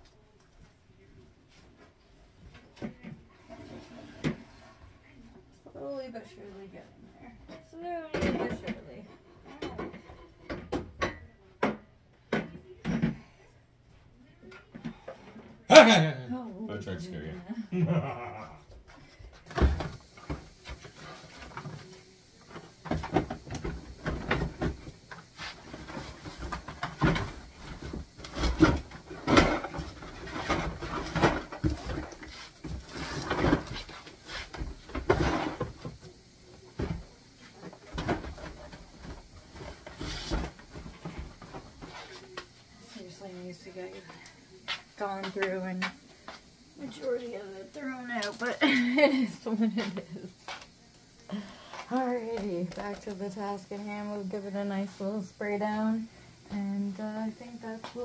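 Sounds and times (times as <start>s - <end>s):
household items knocking and clattering: 19.4s - 21.9s, 22.5s - 42.2s.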